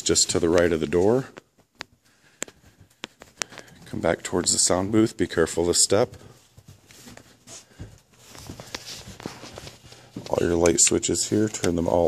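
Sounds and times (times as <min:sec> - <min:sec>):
soft footsteps: 0:00.0 - 0:12.0.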